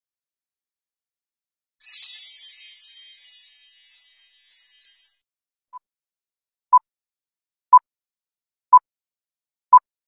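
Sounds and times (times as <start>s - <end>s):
shimmering chime: 1.8s - 5.2s.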